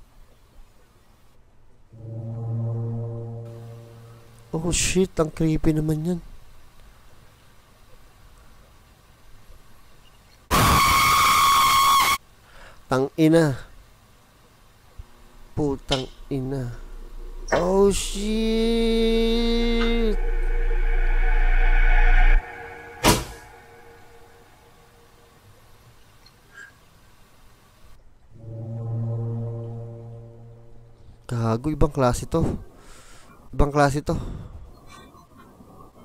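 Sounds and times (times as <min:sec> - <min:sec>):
low steady drone: 0:01.9 - 0:04.9, 0:15.0 - 0:25.4, 0:28.3 - 0:31.4
loud shrill screech: 0:16.7 - 0:24.9.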